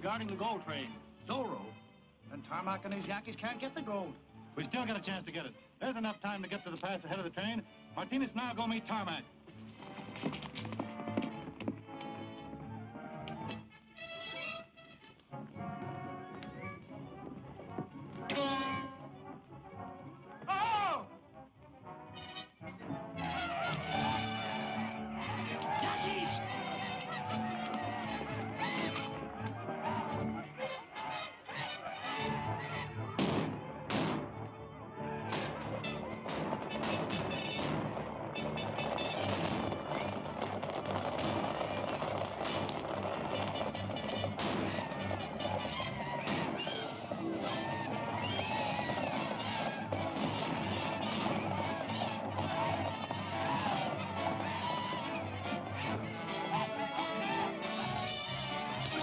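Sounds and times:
old film action music: 0.0s - 59.0s
galloping horses hoofbeats: 6.0s - 59.0s
honking brass notes: 10.8s - 59.0s.

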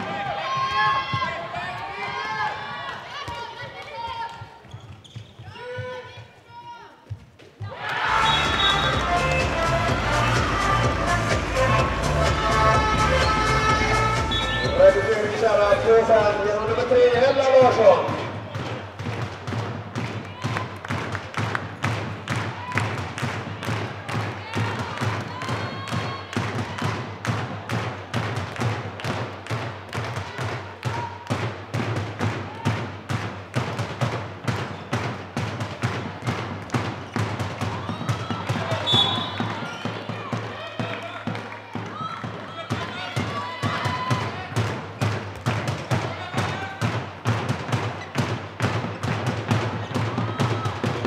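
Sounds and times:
ball bouncing on hall floor: 3.1s - 6.4s, 17.5s - 51.0s.

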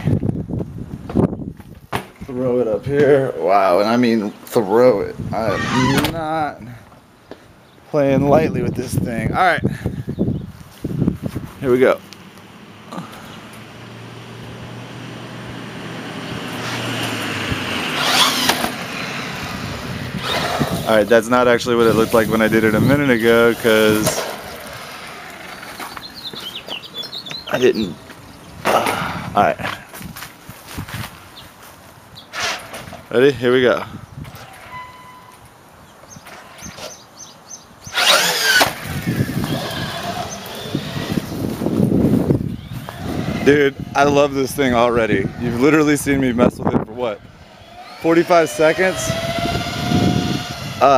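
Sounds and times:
rising vehicle-like noise: 2.3s - 6.8s, 10.1s - 31.4s, 32.3s - 50.9s
tyre noise: 5.3s - 7.0s, 10.6s - 33.2s, 37.9s - 46.2s
toy truck motor whirring: 17.8s - 20.9s, 37.9s - 41.5s, 42.4s - 44.0s, 47.4s - 50.9s.

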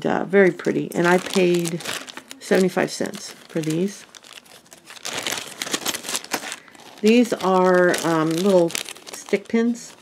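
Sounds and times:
plastic bag crinkling: 0.9s - 10.0s.

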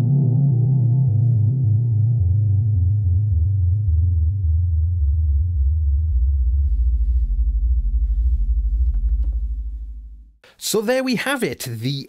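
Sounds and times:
synthesizer bass sequence: 0.0s - 10.4s.

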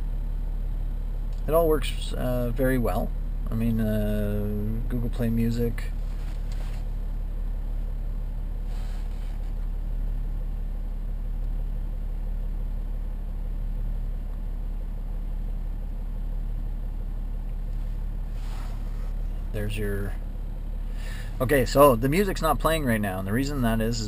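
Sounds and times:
diesel engine idling: 0.0s - 24.0s.

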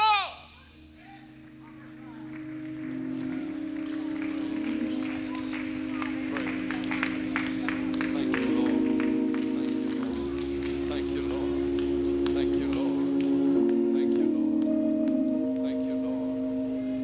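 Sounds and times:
congregation worshipping: 0.0s - 17.0s
sustained keyboard chords: 0.8s - 17.0s
sharp hand claps: 1.4s - 15.2s.

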